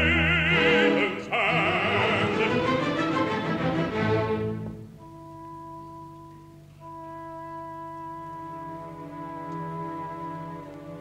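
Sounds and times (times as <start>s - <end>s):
opera orchestra playing: 0.0s - 11.0s.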